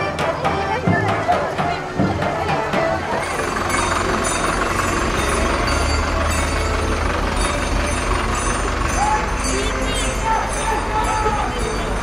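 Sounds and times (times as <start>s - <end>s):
people chattering: 0.0s - 12.0s
vehicle engine low rumble: 1.8s - 12.0s.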